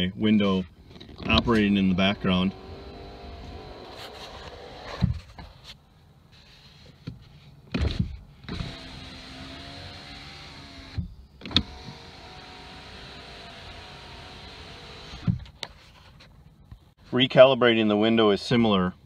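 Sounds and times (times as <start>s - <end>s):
power window motor humming: 2.2s - 5.0s, 8.5s - 15.4s
sharp clicks and thumps: 15.2s - 16.9s.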